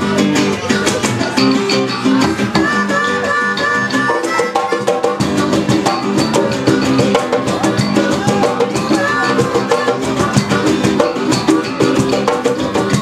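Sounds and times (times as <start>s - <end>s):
hand drums beat: 0.0s - 13.0s
strummed acoustic guitar: 0.0s - 13.0s
harmonica: 1.2s - 13.0s.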